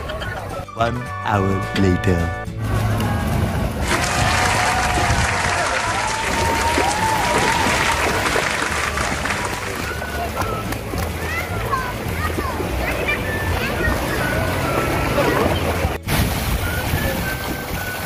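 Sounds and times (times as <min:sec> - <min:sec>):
background music: 0:00.0 - 0:18.0
water hissing and splashing: 0:03.8 - 0:09.9, 0:16.0 - 0:18.0.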